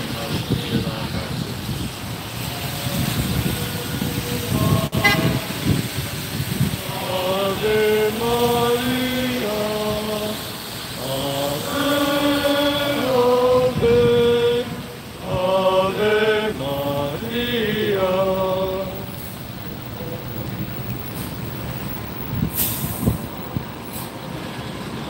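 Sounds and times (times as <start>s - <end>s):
tyres hissing on wet street: 0.0s - 25.0s
group singing a slow hymn: 2.6s - 5.6s, 6.6s - 19.4s.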